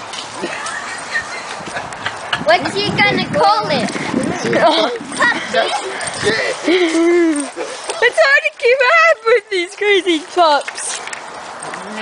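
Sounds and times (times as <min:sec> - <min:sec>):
person laughing: 0:00.4 - 0:02.4, 0:04.5 - 0:08.0.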